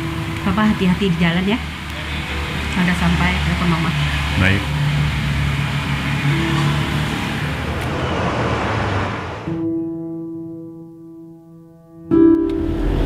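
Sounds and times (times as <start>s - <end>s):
held music chord: 0.0s - 8.2s
car engine and road hiss: 0.0s - 9.6s.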